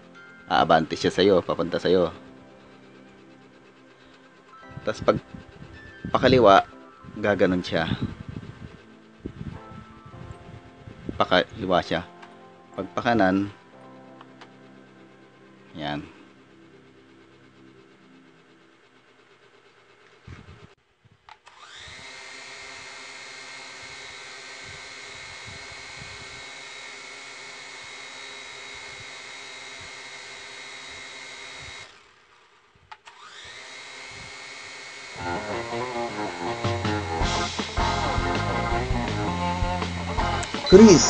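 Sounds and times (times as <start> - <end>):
toy drone motors whining: 0.2 - 12.1, 21.4 - 41.0
loud music: 35.2 - 41.0.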